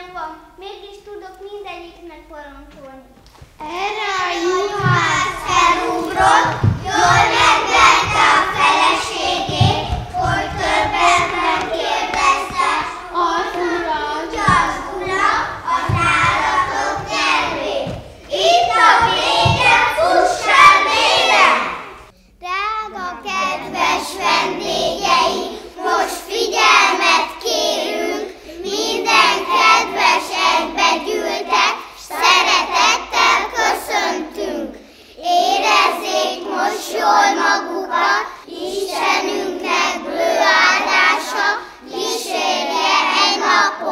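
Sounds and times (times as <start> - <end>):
young children singing: 3.5 - 43.9.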